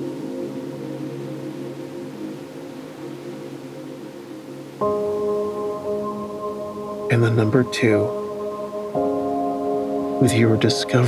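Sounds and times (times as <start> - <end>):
soft ambient music chord: 0.0 - 11.0.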